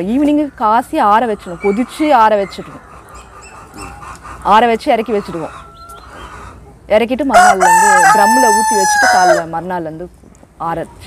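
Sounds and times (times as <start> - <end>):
flock of chickens: 0.2 - 9.5
chicken calling: 1.0 - 9.6.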